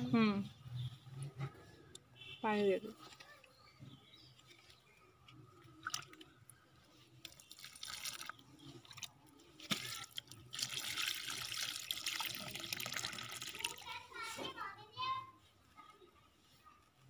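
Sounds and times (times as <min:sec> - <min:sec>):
water pouring onto soil: 0:05.6 - 0:14.0.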